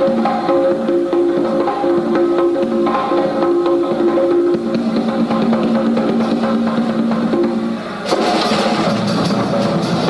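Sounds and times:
conga drums played by hand: 0.0 - 10.0.

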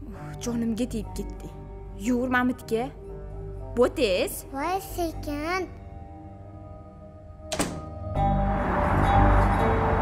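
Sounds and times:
soft background music: 0.0 - 10.0
wooden door shutting: 7.5 - 8.0.

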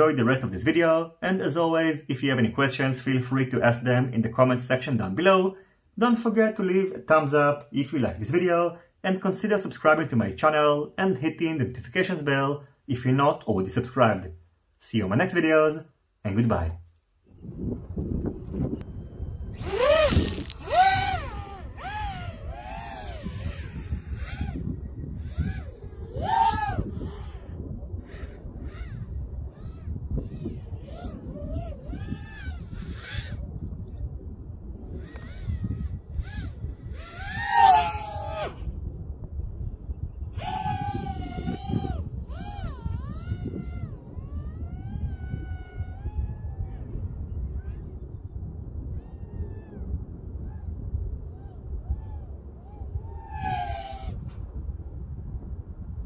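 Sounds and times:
wind rumble on microphone: 16.5 - 56.0
drone motors whining: 18.6 - 33.4, 35.0 - 38.7, 40.4 - 46.8, 52.6 - 54.2.

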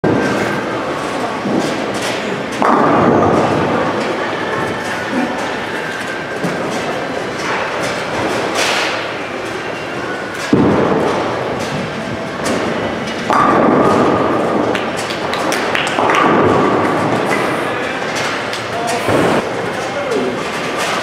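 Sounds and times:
bowling alley clatter: 0.0 - 21.0.

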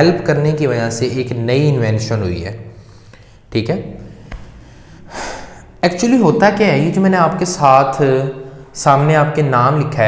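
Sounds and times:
man speaking: 0.0 - 2.7, 3.5 - 4.1, 5.6 - 10.0
man inhaling: 2.7 - 5.8.

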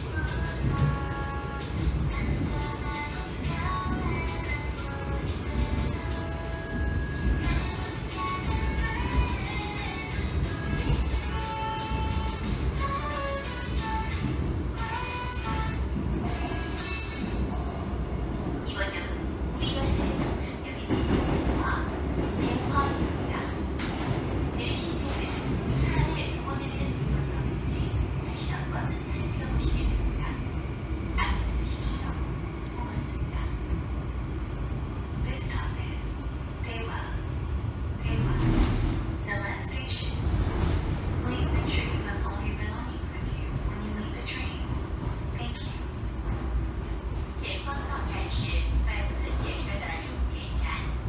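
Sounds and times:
subway train wheels rumbling: 0.0 - 51.0
voices: 18.6 - 33.8, 41.2 - 46.0, 47.4 - 51.0.

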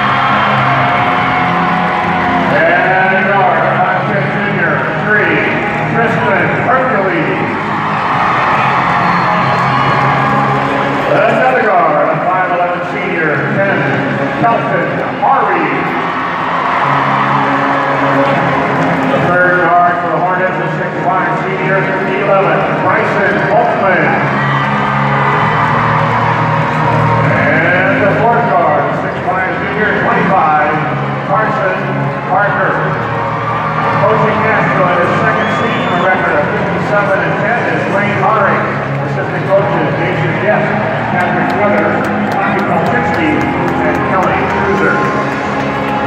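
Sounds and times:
crowd voices: 0.0 - 46.0.

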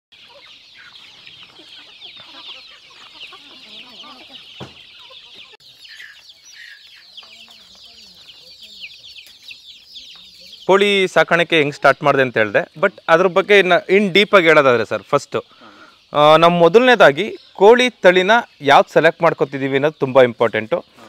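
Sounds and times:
chicks peeping: 0.1 - 21.0
hen clucking: 0.1 - 21.0.

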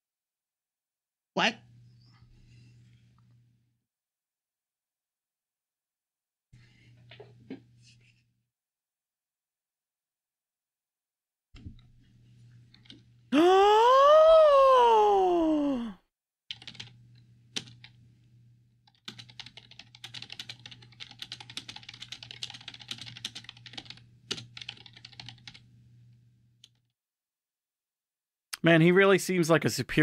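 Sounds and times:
long wailing vocal sound: 13.4 - 16.0
rapid computer keyboard typing: 16.5 - 18.0, 18.9 - 25.6.

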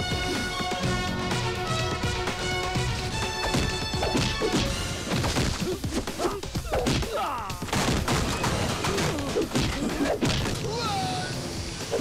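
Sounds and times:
film background music: 0.0 - 12.0
punch whacks and crashing impacts: 3.4 - 10.6.

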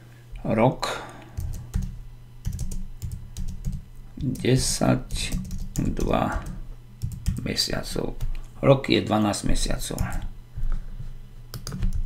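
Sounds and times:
keyboard typing: 1.4 - 7.5, 11.5 - 12.0.

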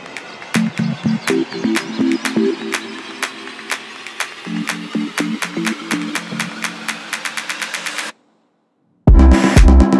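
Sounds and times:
low held synth notes: 0.5 - 7.2.

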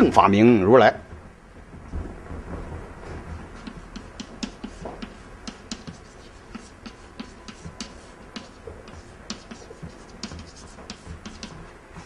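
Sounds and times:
low microphone rumble: 0.9 - 4.0.

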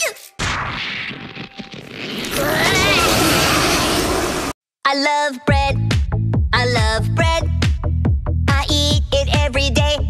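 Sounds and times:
high-pitched scream: 2.3 - 4.3.

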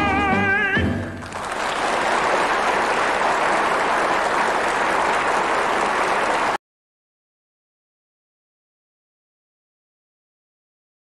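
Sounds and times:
audience applauding: 1.1 - 6.6.

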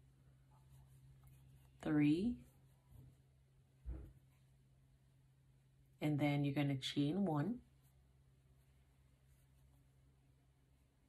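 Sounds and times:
crochet hook rustling yarn: 0.0 - 4.8, 7.0 - 10.2
low steady hum: 0.0 - 11.0
woman speaking: 1.8 - 2.6, 6.0 - 7.7.

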